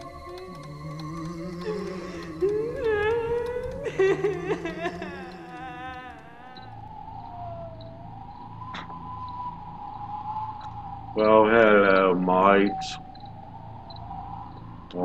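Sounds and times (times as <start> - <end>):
wavering high tone: 0.0 - 8.9
ghostly wails: 0.0 - 14.5
low hum: 0.0 - 15.0.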